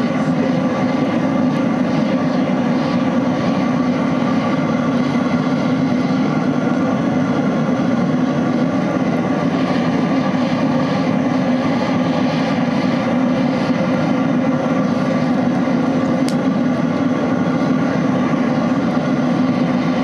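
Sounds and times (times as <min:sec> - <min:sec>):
oil burner flame roaring: 0:00.0 - 0:20.0.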